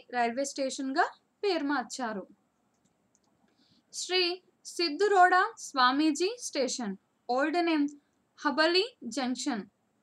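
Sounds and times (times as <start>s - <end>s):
woman narrating: 0.0s - 2.4s, 4.0s - 9.8s
faint clicks: 2.6s - 3.6s.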